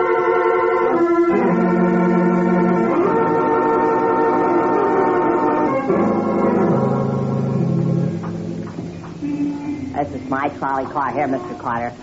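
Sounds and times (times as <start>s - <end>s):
organ chords: 0.0s - 12.0s.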